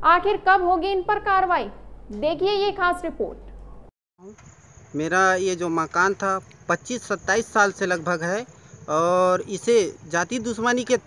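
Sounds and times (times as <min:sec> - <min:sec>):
high-pitched insect drone: 0:04.2 - 0:10.8.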